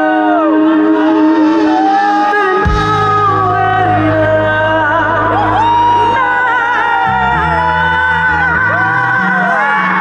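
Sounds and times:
live band music through loudspeakers: 0.0 - 10.0
deep bass: 0.3 - 10.0.

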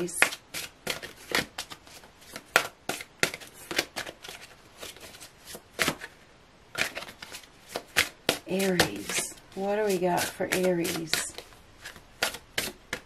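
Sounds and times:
cards shuffled by hand: 0.0 - 13.0.

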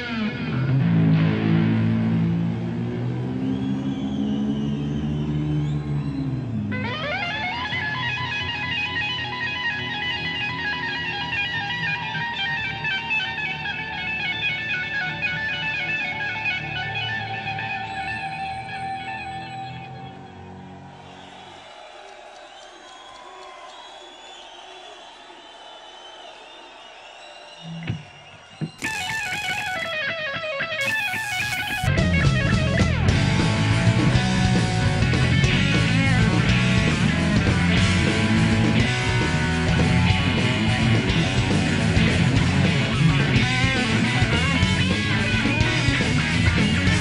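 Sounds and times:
electric guitar solo: 0.0 - 2.6, 6.7 - 20.2, 28.8 - 33.3
live rock band: 28.7 - 47.0.

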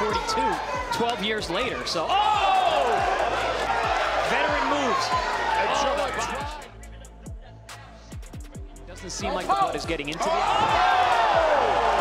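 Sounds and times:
arena crowd noise: 0.0 - 8.2, 9.0 - 12.0.

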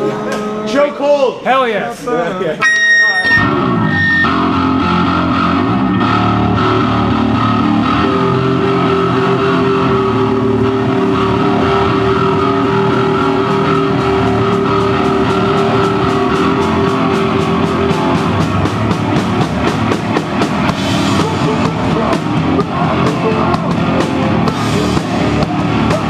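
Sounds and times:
steady held tone: 2.6 - 8.6
high whine: 2.6 - 25.9
distorted guitar and bass chords: 2.6 - 26.0.

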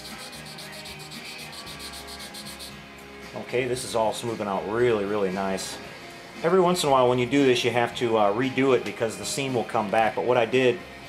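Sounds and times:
sandpaper rubbing on plastic: 0.0 - 2.7.

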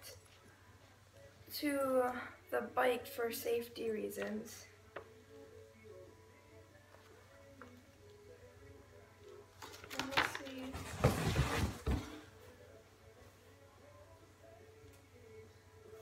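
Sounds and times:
paper rustling: 9.6 - 12.2.

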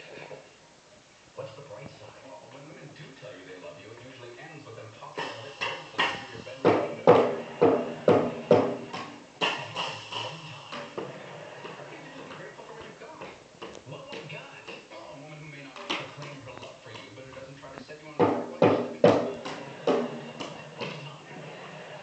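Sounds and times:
toy drum kit hits: 5.2 - 11.1, 18.2 - 21.1.

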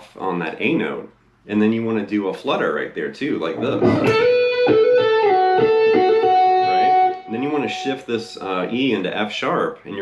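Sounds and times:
electric guitar lick: 3.5 - 7.9.

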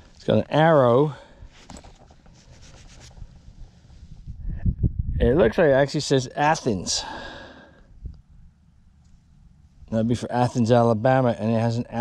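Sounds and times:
gloved fingers rubbing metal: 2.1 - 4.3.

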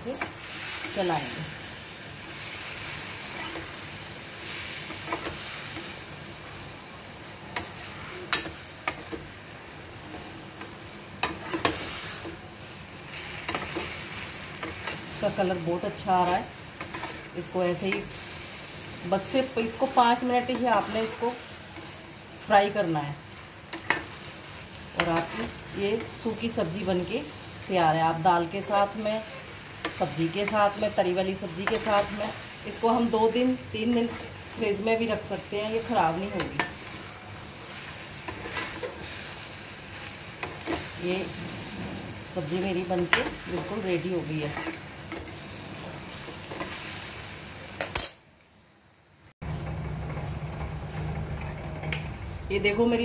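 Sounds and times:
leaves sizzling in frying pan: 0.0 - 48.0.

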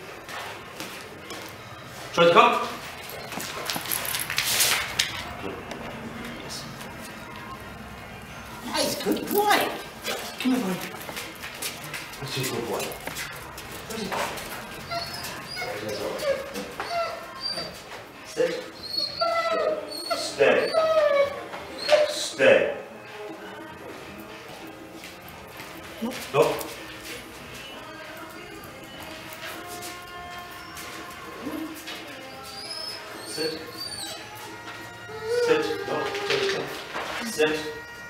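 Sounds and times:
dog scuffling on rubber floor: 0.2 - 5.3, 8.7 - 17.0, 35.9 - 37.4
young dog whining: 14.7 - 17.9, 18.6 - 22.3, 30.5 - 38.0.

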